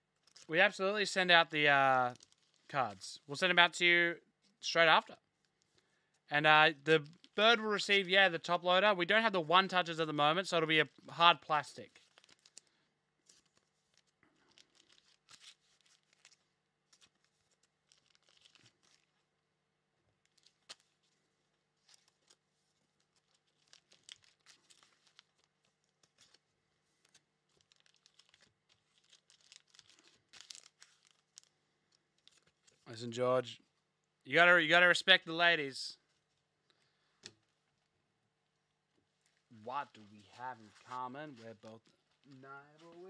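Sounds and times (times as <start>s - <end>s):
plastic sleeves crinkling: 0.1s - 0.6s, 2.1s - 3.7s, 4.4s - 6.3s, 6.9s - 7.5s, 10.8s - 19.5s, 20.1s - 32.9s, 36.0s - 43.0s.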